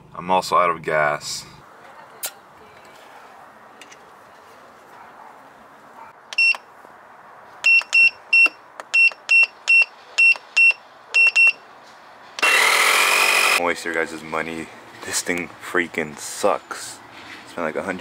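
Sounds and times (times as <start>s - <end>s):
short electronic beeps: 6.3s - 6.6s, 7.6s - 11.6s
air compressor running: 12.4s - 13.6s.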